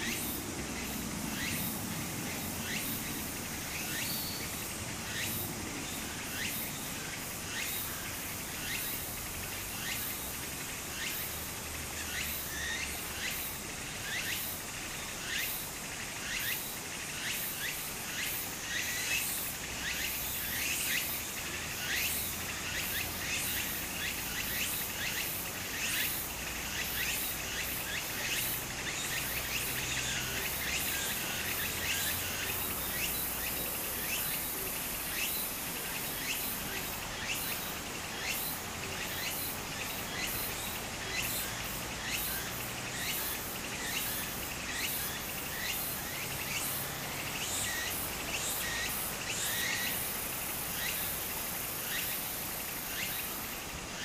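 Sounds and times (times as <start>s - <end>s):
cicadas calling: 0.0s - 54.0s
stream trickling: 0.0s - 54.0s.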